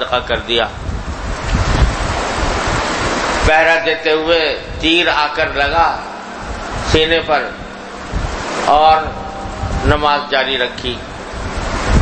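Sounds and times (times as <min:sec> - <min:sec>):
loud rushing noise: 0:00.8 - 0:12.0
low rumble: 0:04.5 - 0:12.0.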